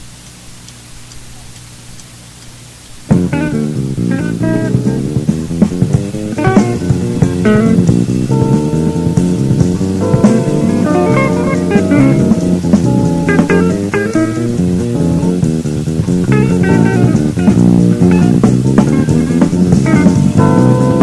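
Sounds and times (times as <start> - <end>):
guitar: 3.0 - 21.0
big band jazz playing: 3.1 - 21.0.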